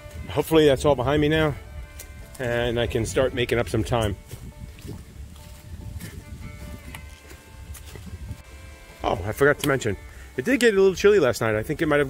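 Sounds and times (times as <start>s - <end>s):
footsteps on dry leaves: 0.0s - 12.0s
low wind rumble on microphone: 0.0s - 12.0s
soft music with long held notes: 0.0s - 12.0s.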